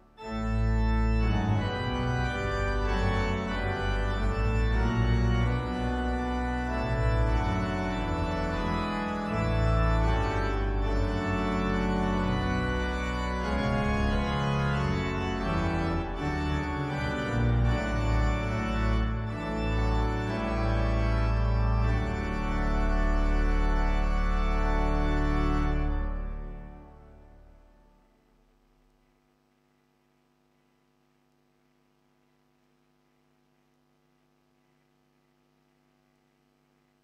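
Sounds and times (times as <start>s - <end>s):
organ playing hymn tune in chords: 0.0s - 28.8s
organ pedal bass line: 0.0s - 29.2s.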